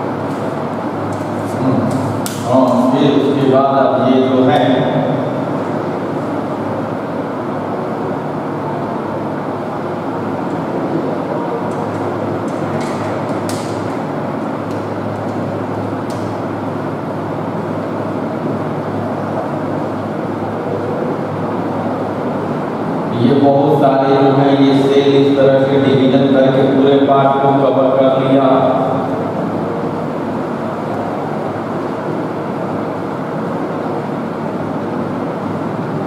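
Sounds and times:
room noise rushing hum: 0.0s - 36.0s.

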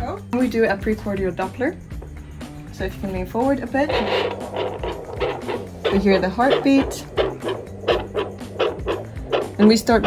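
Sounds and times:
background music: 0.0s - 10.0s
doppler heartbeat pulses: 3.9s - 10.0s.

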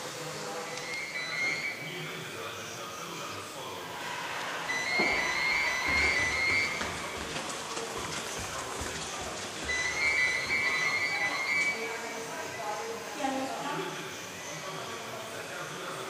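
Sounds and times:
indistinct voices: 0.0s - 16.0s.

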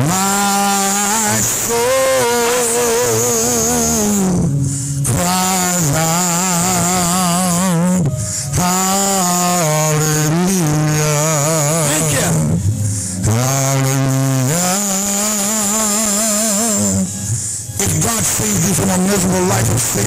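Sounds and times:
man singing with vibrato: 0.0s - 20.0s.

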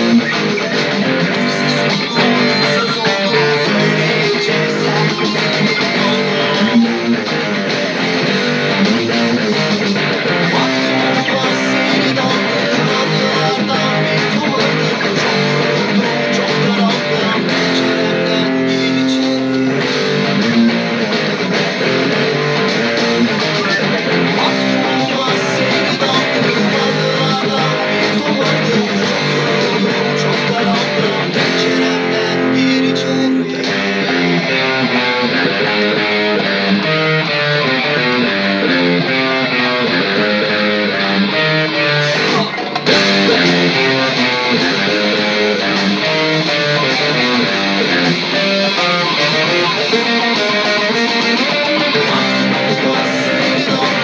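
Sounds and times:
electric guitar playing: 0.0s - 54.0s
rock backing track: 0.0s - 54.0s.

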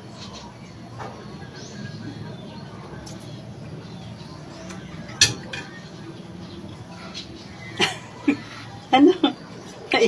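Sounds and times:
metal utensil clinking on dishware: 5.2s - 5.8s.

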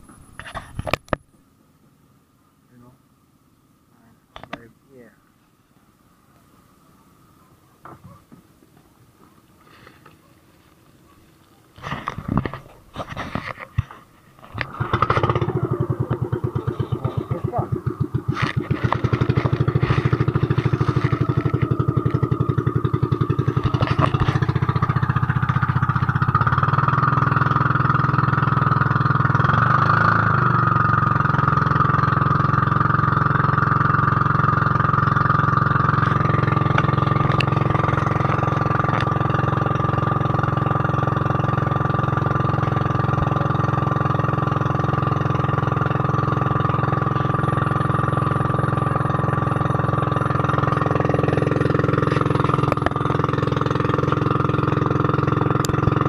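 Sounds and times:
boat engine running: 11.0s - 56.0s.

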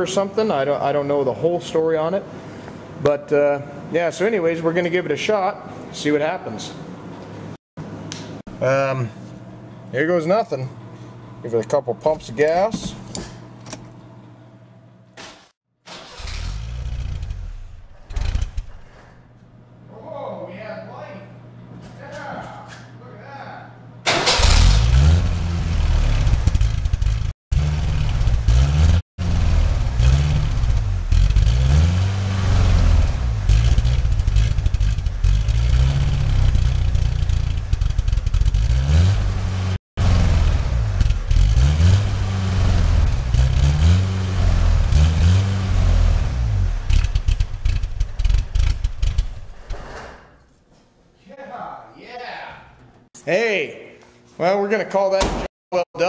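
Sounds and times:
car engine revving unevenly: 24.5s - 49.2s.

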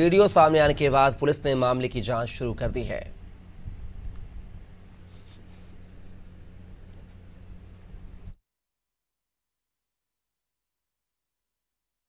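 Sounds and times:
low electrical hum: 0.0s - 8.4s
soft clicks and scratches: 4.9s - 7.3s.

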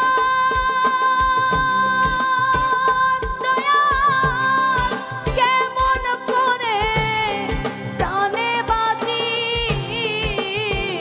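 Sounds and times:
drum beat: 0.0s - 11.0s
live band playing: 0.0s - 11.0s
woman singing folk song: 0.0s - 11.0s.

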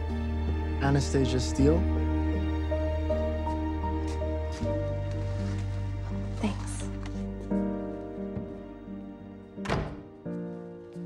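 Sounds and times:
soft film score: 0.0s - 11.0s.

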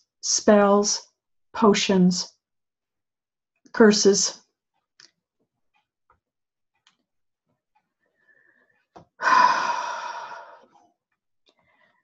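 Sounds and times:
woman sighing: 9.2s - 10.7s.

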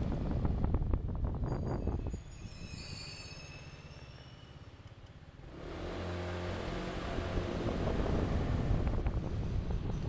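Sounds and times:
vehicle engine accelerating: 5.4s - 10.0s.

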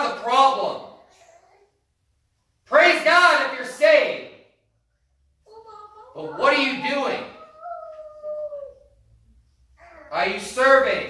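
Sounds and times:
high-pitched vocal cry: 5.5s - 9.0s.

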